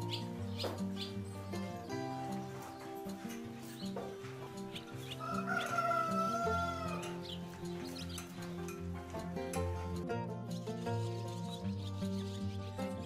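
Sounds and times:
swallows chirping: 0:00.0 - 0:06.4, 0:07.1 - 0:08.6, 0:10.5 - 0:13.0
background music with held notes: 0:00.0 - 0:13.0.

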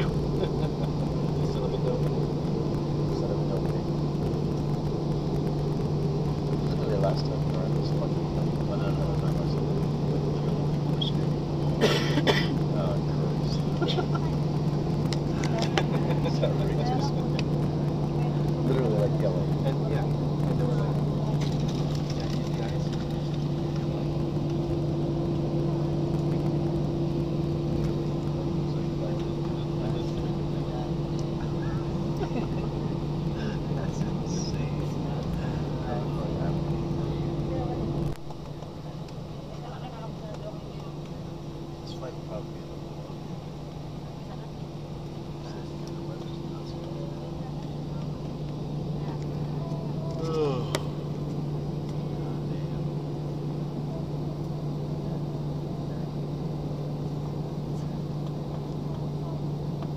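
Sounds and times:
jet engines droning: 0:00.0 - 0:59.9.

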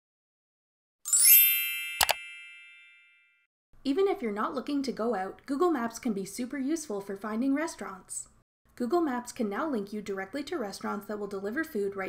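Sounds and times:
bright rising chime: 0:01.1 - 0:03.4
woman speaking: 0:03.9 - 0:12.0.

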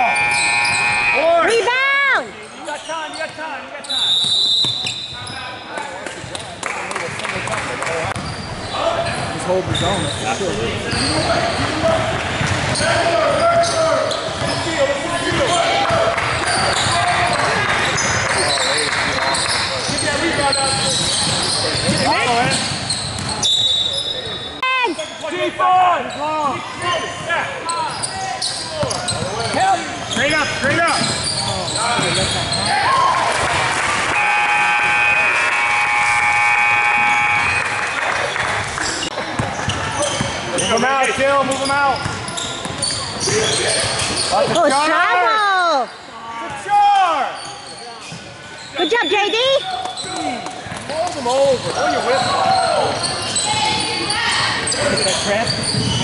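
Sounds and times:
sneakers squeaking: 0:00.0 - 0:06.6, 0:08.0 - 0:44.9, 0:45.6 - 0:56.0.

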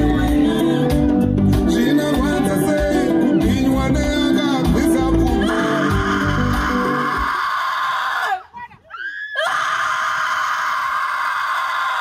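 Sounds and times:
bass-heavy backing music: 0:00.0 - 0:07.3
voices screaming together: 0:05.4 - 0:12.0.

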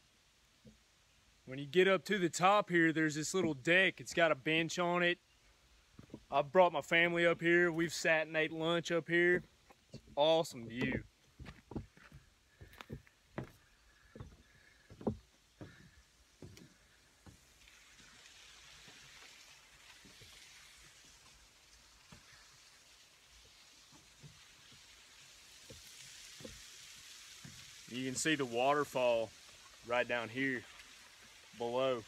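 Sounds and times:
faint rushing hiss: 0:00.0 - 0:32.0
footsteps on wooden deck boards: 0:05.9 - 0:06.3, 0:09.4 - 0:17.5.

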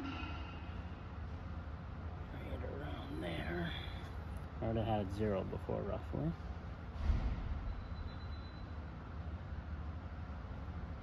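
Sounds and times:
low background hum: 0:00.0 - 0:11.0
dull low thump: 0:06.9 - 0:07.8.

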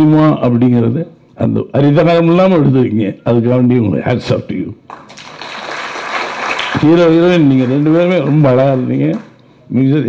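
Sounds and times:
audience applauding: 0:04.9 - 0:09.4.

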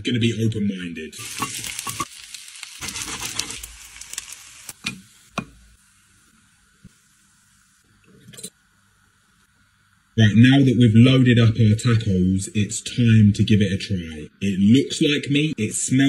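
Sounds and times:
steak sizzling in frying pan: 0:01.2 - 0:05.4.

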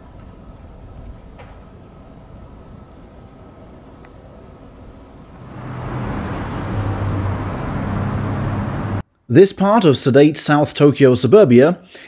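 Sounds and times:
quiet street ambience: 0:00.0 - 0:09.5
vehicle engine and road noise: 0:05.2 - 0:09.0.

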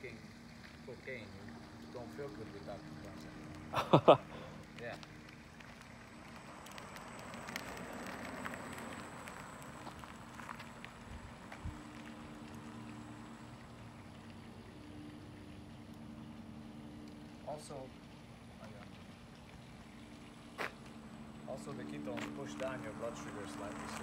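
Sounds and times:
light crackling hiss: 0:00.0 - 0:24.0
low steady hum: 0:00.0 - 0:24.0.

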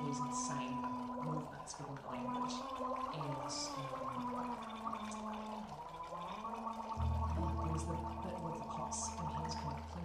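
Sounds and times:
people gargling: 0:00.0 - 0:10.0.

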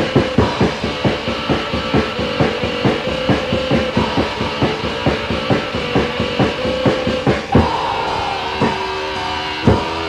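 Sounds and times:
drum kit beating: 0:00.0 - 0:10.0
sustained guitar tone: 0:00.0 - 0:10.0.

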